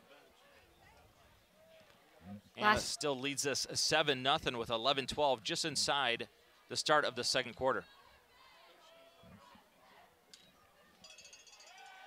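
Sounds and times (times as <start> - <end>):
distant voices of players and crowd: 0.0 - 12.0.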